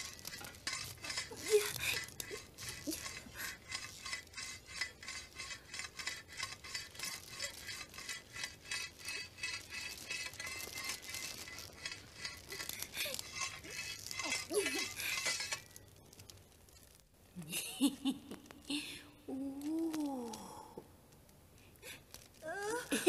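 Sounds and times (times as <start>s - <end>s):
rhythmic scraping: 0.0s - 20.0s, 21.8s - 23.0s.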